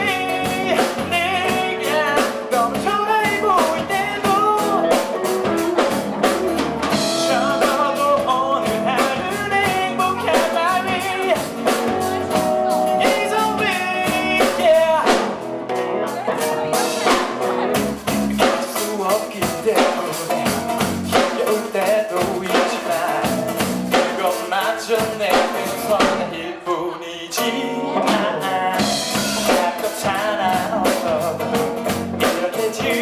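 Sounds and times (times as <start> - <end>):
man singing into microphone: 0.0 - 5.9, 7.0 - 12.0, 12.8 - 15.4, 18.4 - 33.0
drum kit beat: 0.0 - 26.4, 27.4 - 33.0
electric guitars: 0.0 - 26.5, 27.3 - 33.0.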